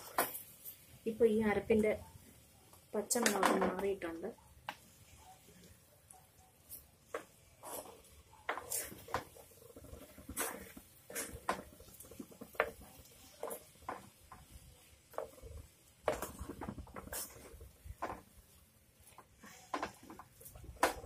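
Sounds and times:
wooden spoon scraping clay pot: 7.0 - 21.0.

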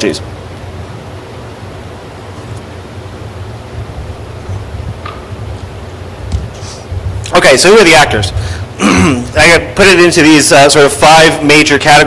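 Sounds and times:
low hum: 0.0 - 9.8
faint hiss: 0.0 - 12.0.

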